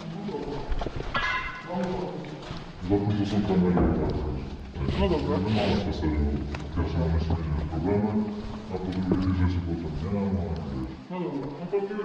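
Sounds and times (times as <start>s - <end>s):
people talking: 1.7s - 12.0s.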